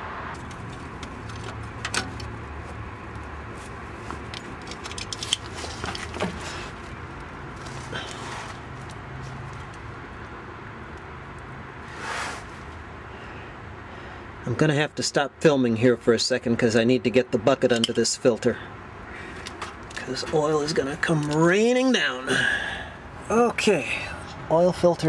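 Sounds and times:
metal wrench clicks and scrapes: 4.0s - 6.2s, 17.7s - 18.0s
short rush of noise: 11.8s - 12.6s.

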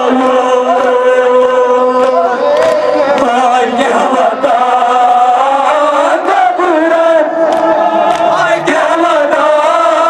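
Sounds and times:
men chanting a lament over loudspeaker: 0.0s - 10.0s.

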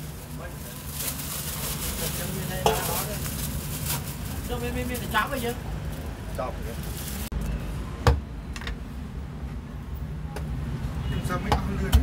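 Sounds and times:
plastic bag crinkling: 0.0s - 7.3s.

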